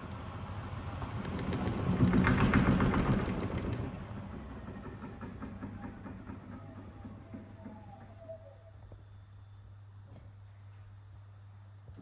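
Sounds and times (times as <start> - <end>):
washing machine spinning: 0.0 - 8.7.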